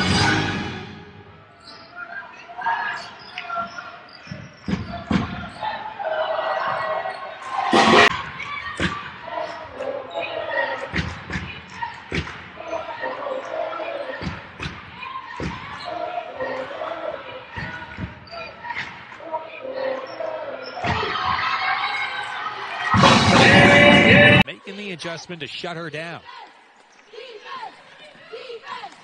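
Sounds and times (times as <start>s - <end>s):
murmur of voices: 1.1s - 29.0s.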